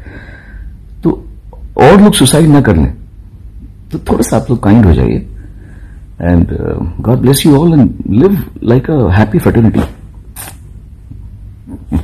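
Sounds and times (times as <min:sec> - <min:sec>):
man breathing: 0:00.0 - 0:00.8, 0:05.4 - 0:06.2
low steady hum: 0:00.0 - 0:12.0.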